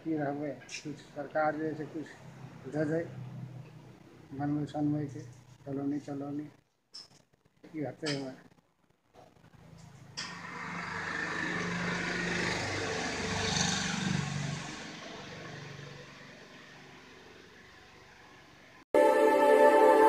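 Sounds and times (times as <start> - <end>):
motor vehicle passing by: 0.5 - 5.6, 9.6 - 18.8.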